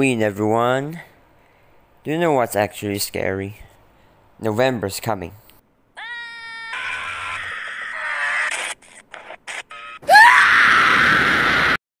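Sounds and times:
harsh distorted scream: 0:06.0 - 0:08.7, 0:10.0 - 0:11.8.

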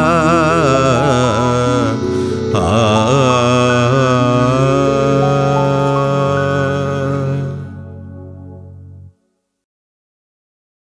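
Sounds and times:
wordless singing with vibrato: 0:00.0 - 0:08.4
held musical accompaniment: 0:00.0 - 0:09.0.

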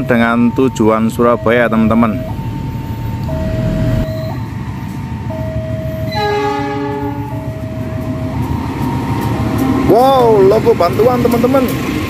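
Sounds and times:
two-tone level-crossing alarm: 0:00.0 - 0:11.2
diesel locomotive rumble: 0:00.0 - 0:12.0
locomotive horn chord: 0:06.0 - 0:07.5.

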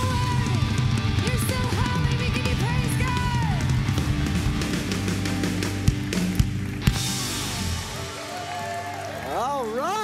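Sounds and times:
live worship band playing: 0:00.0 - 0:10.0.

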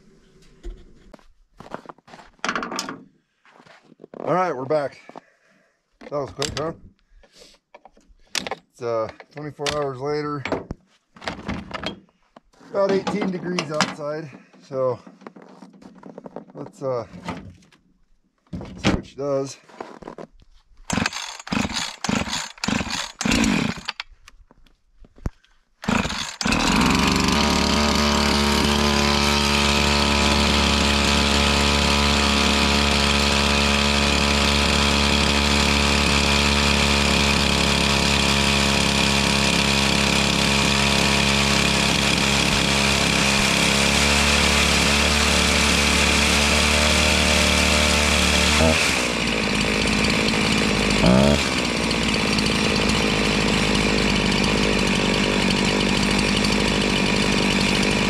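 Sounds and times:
chainsaw running: 0:20.9 - 0:24.1, 0:25.8 - 0:58.0.

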